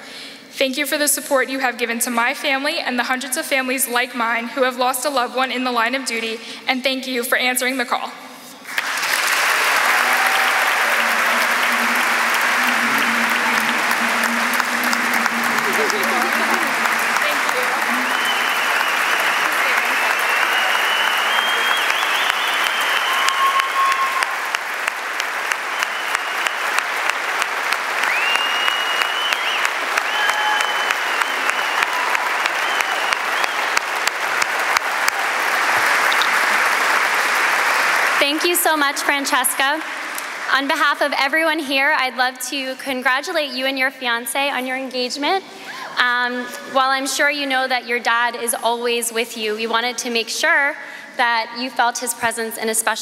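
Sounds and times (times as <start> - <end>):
audience applauding: 8.6 - 40.8.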